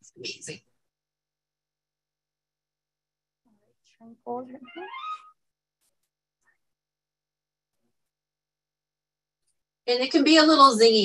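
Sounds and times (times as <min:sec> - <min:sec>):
woman speaking: 0:04.0 - 0:04.9.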